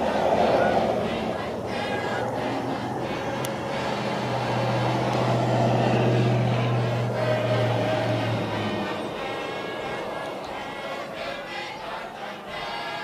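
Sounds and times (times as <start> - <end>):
low engine hum: 0.0 - 13.0.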